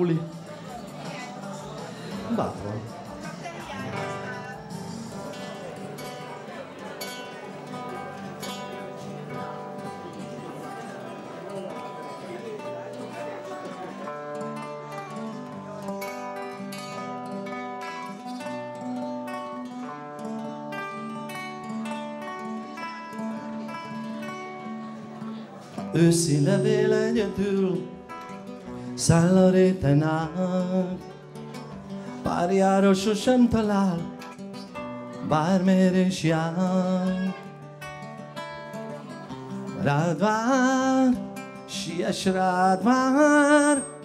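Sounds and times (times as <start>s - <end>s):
classical guitar playing: 0.0s - 44.0s.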